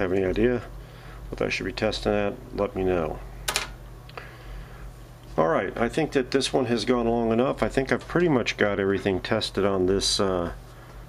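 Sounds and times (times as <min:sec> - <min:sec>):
person speaking: 0:00.0 - 0:03.4, 0:05.3 - 0:10.6
steady low hum: 0:00.0 - 0:11.0.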